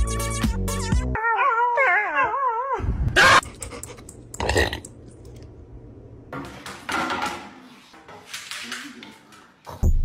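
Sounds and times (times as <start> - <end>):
dog howling: 1.2 - 3.4.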